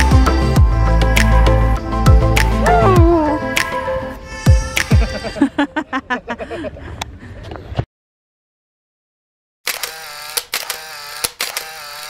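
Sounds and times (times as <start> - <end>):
camera shutter clicks: 9.7 - 12.0
film winding whir: 9.7 - 12.0.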